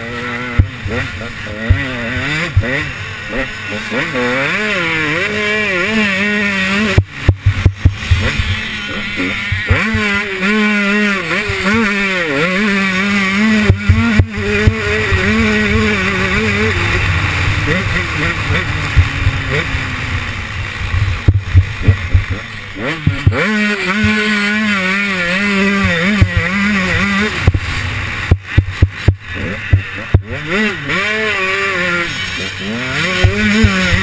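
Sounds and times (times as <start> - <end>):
motocross engine revving: 0.0 - 34.0.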